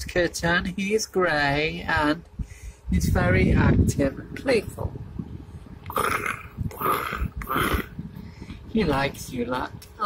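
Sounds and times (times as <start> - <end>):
person making growly kitten calls: 5.9 - 8.0.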